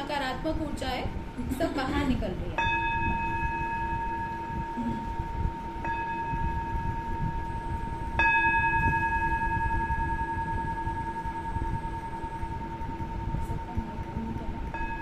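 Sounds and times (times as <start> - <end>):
steady low drone: 0.5 - 15.0
singing bowl ringing: 2.6 - 15.0.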